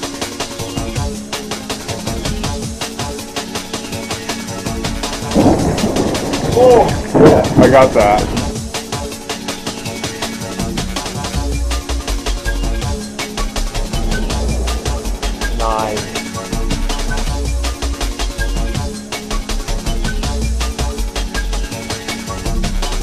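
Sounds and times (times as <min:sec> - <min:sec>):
electronic music with steady beat: 0:00.0 - 0:23.0
rain: 0:03.2 - 0:12.4, 0:13.3 - 0:18.8
thunder rumbling: 0:04.8 - 0:08.9, 0:13.4 - 0:18.8.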